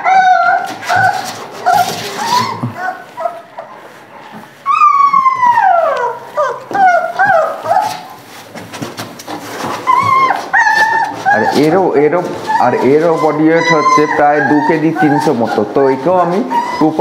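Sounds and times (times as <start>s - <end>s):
puppies whimpering and crying: 0.0s - 17.0s.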